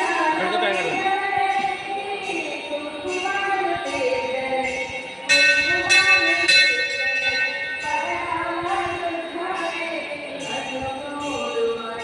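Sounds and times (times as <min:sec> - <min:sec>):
devotional music with singing: 0:00.0 - 0:12.0
metal bell ringing: 0:00.0 - 0:12.0.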